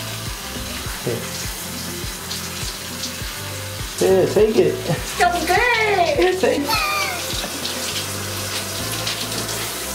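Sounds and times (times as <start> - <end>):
shower head spraying water: 0.0 - 9.9
water splashing: 4.7 - 9.9.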